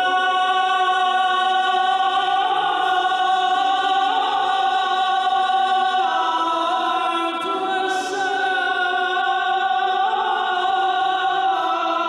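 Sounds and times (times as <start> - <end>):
choir chanting: 0.0 - 12.0.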